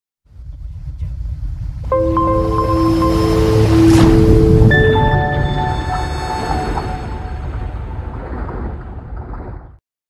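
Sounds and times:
low rumble: 0.3 - 9.8
chord of held tones: 1.9 - 7.8.

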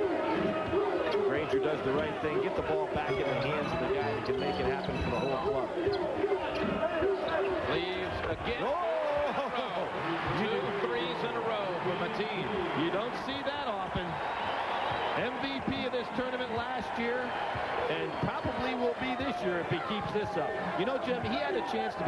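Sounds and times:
crowd voices and shouts: 0.0 - 22.0.

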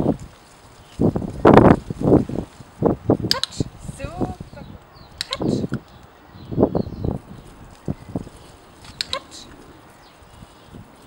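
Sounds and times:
sharp clicks: 4.8 - 6.1, 8.8 - 9.4.

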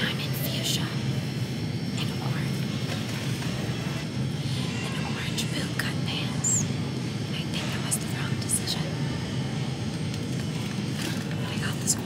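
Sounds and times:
woman whispering: 0.0 - 1.3, 1.9 - 2.9, 4.8 - 9.0, 11.0 - 12.0
low background hum: 0.0 - 12.0.

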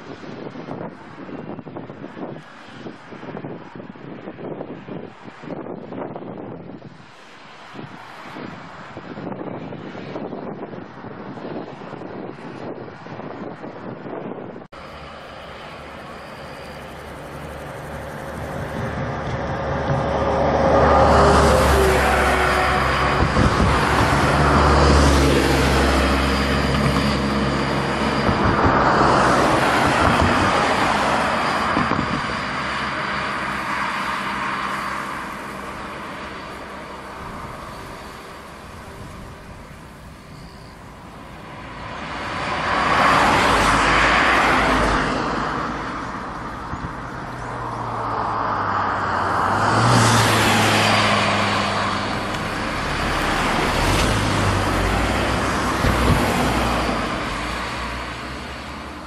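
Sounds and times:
low engine hum: 0.0 - 59.0
cars passing close by: 14.7 - 59.0.

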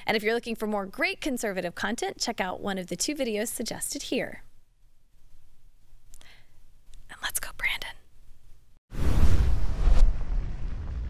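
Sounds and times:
woman speaking softly: 7.1 - 8.0
loud burst of sound: 8.9 - 11.0.

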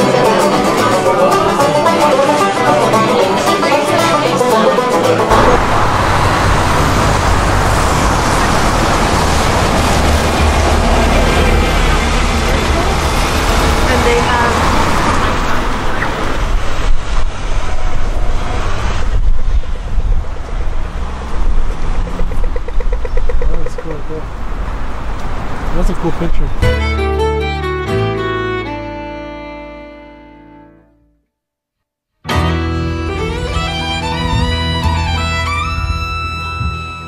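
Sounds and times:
people's voices: 0.0 - 9.8, 10.8 - 16.3
cars passing on wet road: 0.6 - 26.7.

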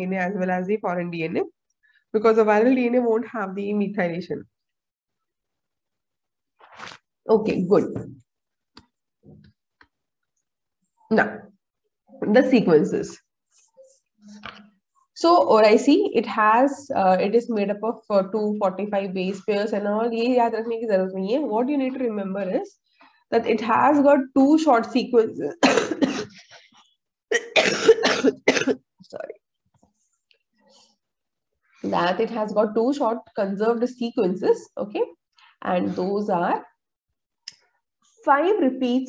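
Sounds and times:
woman coughing harshly: 25.6 - 26.4, 27.3 - 28.9.

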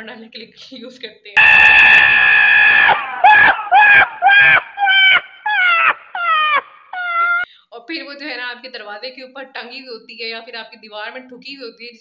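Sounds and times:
donkey braying: 1.4 - 7.5.

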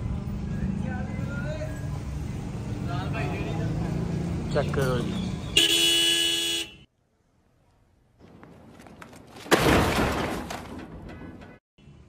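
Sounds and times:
car horn: 5.6 - 6.9.

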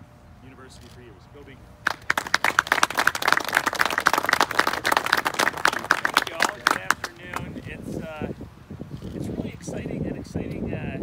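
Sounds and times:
audience applauding: 1.9 - 7.5.

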